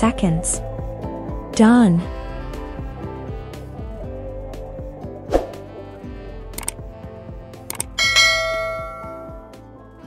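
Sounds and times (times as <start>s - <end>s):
background music: 0.0s - 10.0s
mouse button clicks: 6.6s - 6.8s, 7.7s - 7.9s
notification bell chime: 8.0s - 9.5s.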